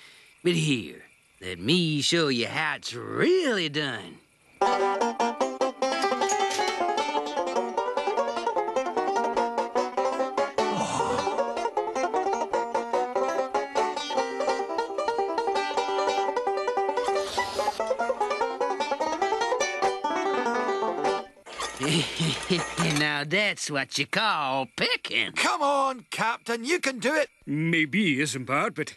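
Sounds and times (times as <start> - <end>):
banjo picked fast: 4.6 - 23.0.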